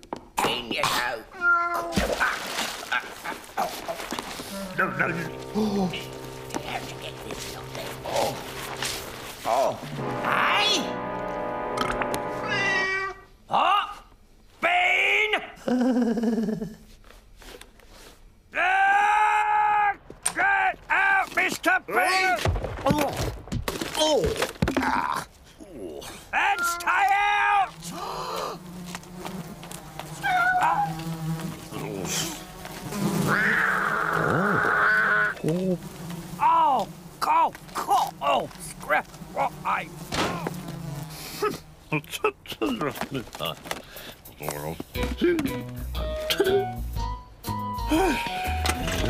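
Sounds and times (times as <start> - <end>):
flies buzzing: 3.5 - 13.2, 26.4 - 42.1
held music chords: 4.7 - 13.0
cartoon cat yowling meow: 12.4 - 13.3, 26.4 - 27.5, 30.2 - 31.0, 33.3 - 35.3.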